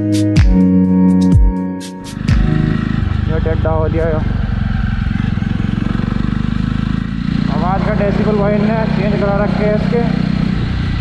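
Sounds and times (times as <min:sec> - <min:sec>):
electronic music with deep bass: 0:00.0 - 0:03.4
motorcycle engine running: 0:01.2 - 0:11.0.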